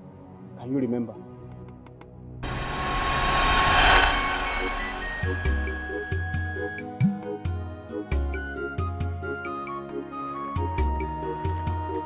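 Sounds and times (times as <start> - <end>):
rushing whoosh: 2.4 - 6.6.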